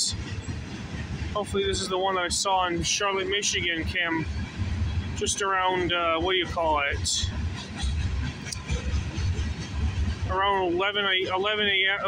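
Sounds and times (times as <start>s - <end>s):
train wheels rumbling on rail: 0.0s - 12.0s.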